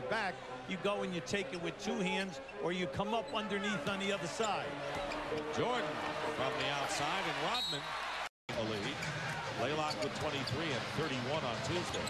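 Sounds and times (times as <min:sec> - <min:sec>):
basketball arena sound: 0:00.0 - 0:12.0.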